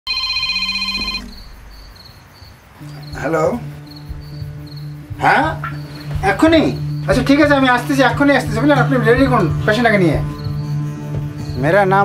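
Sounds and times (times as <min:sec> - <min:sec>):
mobile phone ringing: 0:00.1 - 0:01.4
faint cricket chirps: 0:00.1 - 0:12.0.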